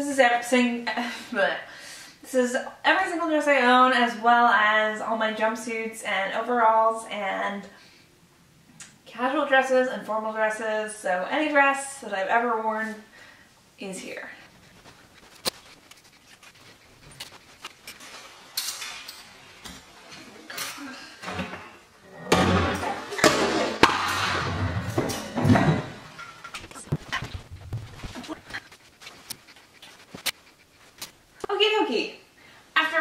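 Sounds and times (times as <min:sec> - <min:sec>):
fabric rustling: 0:14.3 - 0:20.0, 0:26.5 - 0:31.4.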